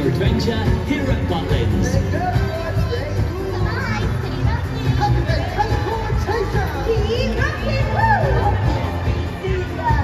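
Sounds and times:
music over sound system: 0.0s - 10.0s
children calling out and chattering: 2.4s - 6.1s.

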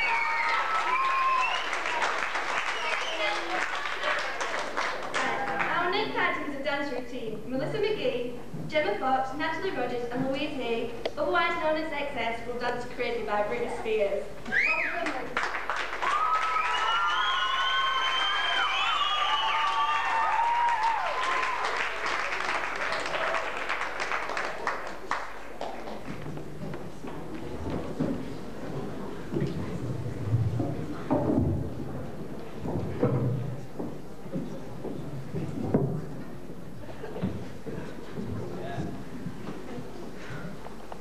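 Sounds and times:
audience applauding: 0.0s - 5.7s, 14.5s - 26.2s
footsteps on stage floor: 25.6s - 41.0s.

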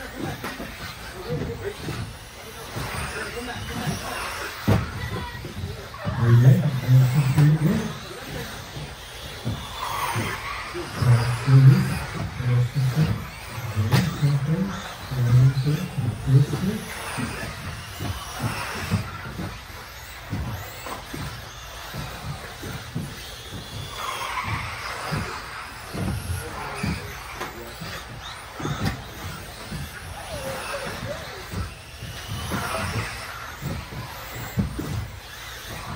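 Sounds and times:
electric rc cars racing: 0.0s - 35.9s.

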